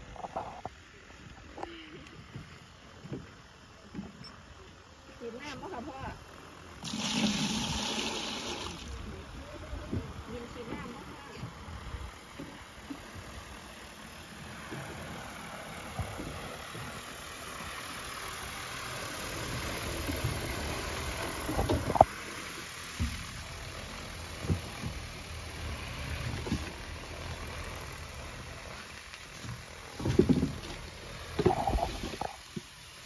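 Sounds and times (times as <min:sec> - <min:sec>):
drone rotors whirring: 0:00.0 - 0:33.0.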